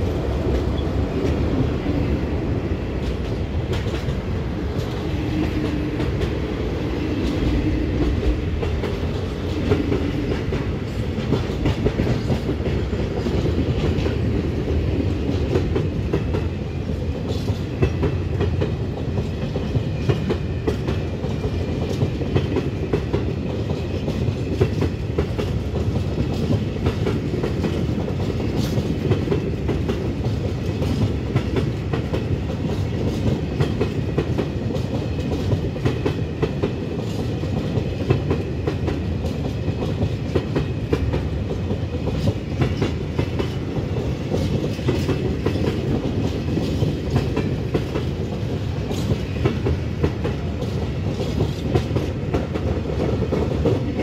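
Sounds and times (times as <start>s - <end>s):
clickety-clack over rail joints: 0.0s - 54.0s
freight wagon wheels rumbling on rail: 0.0s - 54.0s.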